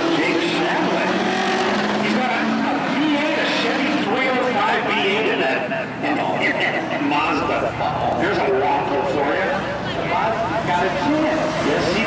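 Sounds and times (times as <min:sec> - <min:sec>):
crowd voices: 0:00.0 - 0:12.0
race car engines at speed: 0:00.0 - 0:12.0.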